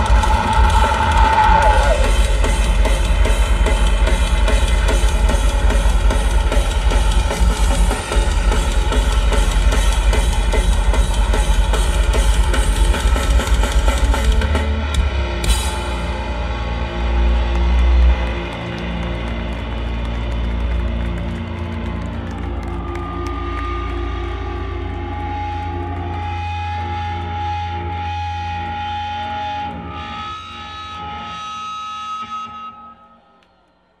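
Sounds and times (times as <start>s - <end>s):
drums: 0.0s - 27.0s
distorted electric guitars: 0.0s - 33.2s.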